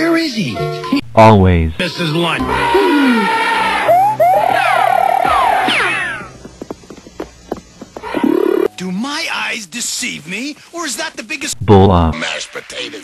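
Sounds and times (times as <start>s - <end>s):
warbling whistle trill: 2.4s - 6.0s
person speaking: 11.5s - 12.2s.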